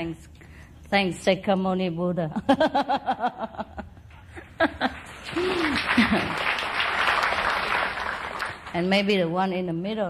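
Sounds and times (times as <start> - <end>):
large audience applauding: 4.9 - 9.0.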